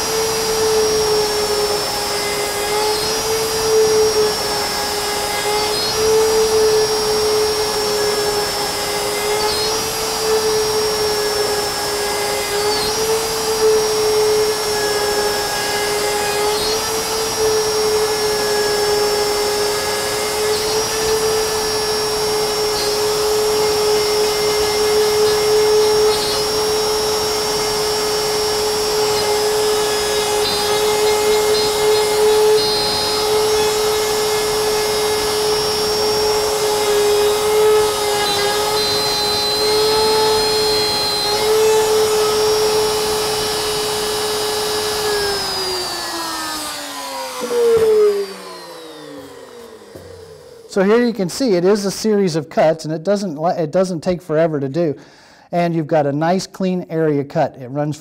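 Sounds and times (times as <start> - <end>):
router whining: 0.0 - 51.8.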